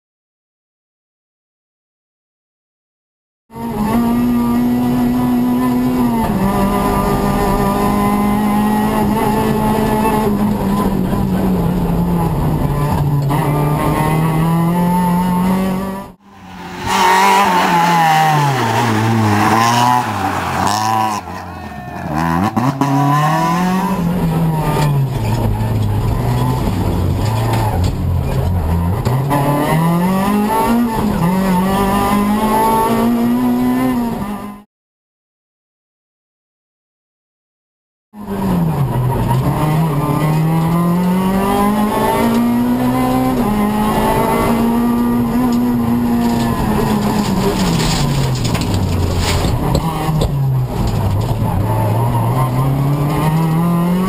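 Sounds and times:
rally car engine revving: 3.5 - 34.6, 38.2 - 54.0.

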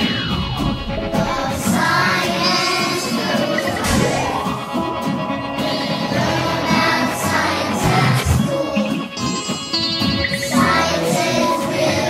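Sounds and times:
instrumental backing: 0.0 - 12.0
children singing: 0.8 - 12.0.

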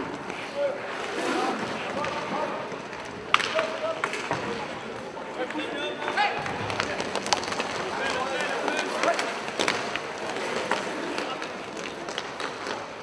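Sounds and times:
skate wheels rumbling on floor: 0.0 - 13.0
sticks and puck clacking: 0.0 - 13.0.

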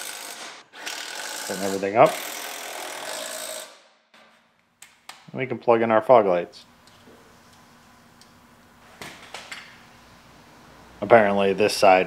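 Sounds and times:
faint steady hum: 4.6 - 12.0.

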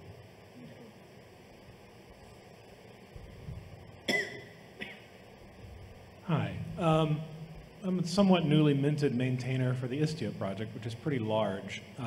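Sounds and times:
faint hall noise: 0.0 - 12.0
cough into a microphone: 4.0 - 5.2.

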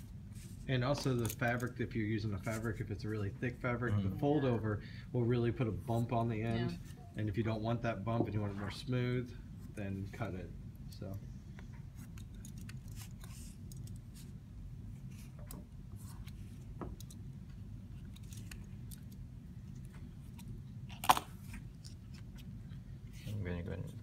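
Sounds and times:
steady low hum: 0.0 - 24.0.

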